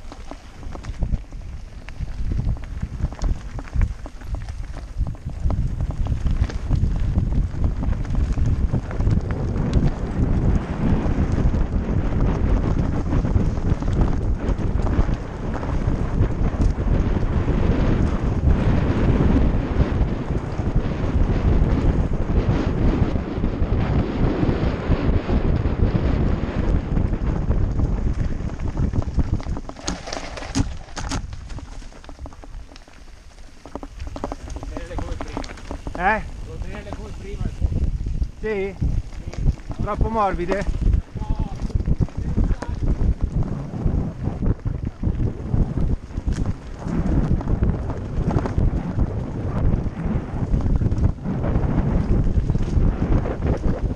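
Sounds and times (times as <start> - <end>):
bike rattling over rocky trail: 0.0 - 53.9
wind buffeting microphone: 0.0 - 53.9.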